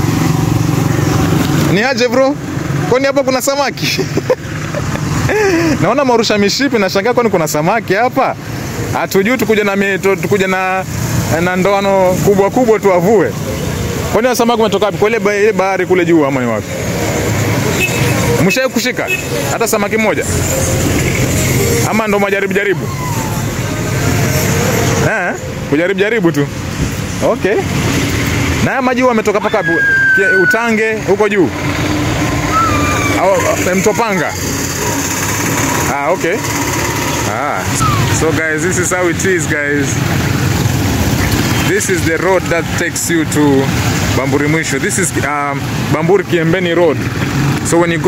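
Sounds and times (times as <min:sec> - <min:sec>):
vehicle engine rumbling: 0:00.0 - 0:48.0
people talking: 0:01.7 - 0:04.4, 0:05.3 - 0:13.4, 0:14.1 - 0:16.7, 0:18.2 - 0:23.8, 0:25.0 - 0:26.6, 0:27.2 - 0:27.7, 0:28.6 - 0:31.5, 0:32.5 - 0:35.1, 0:35.7 - 0:36.5, 0:37.2 - 0:40.2, 0:41.2 - 0:47.0, 0:47.7 - 0:48.0
motorcycle engine passing: 0:29.8 - 0:41.8.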